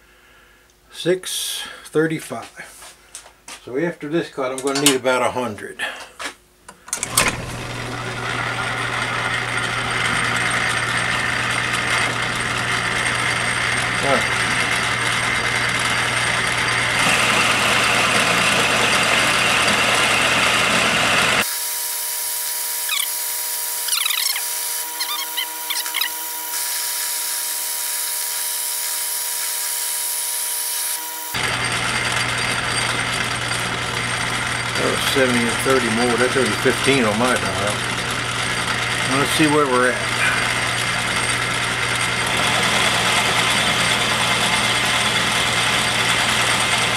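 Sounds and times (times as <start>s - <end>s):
steady whining tones: 6.9s - 42.1s
metal lathe motor hum: 7.0s - 46.9s.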